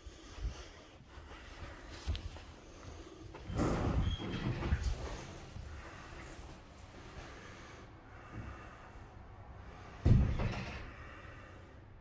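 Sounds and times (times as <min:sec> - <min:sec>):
door squeak: 0:03.5 - 0:04.9.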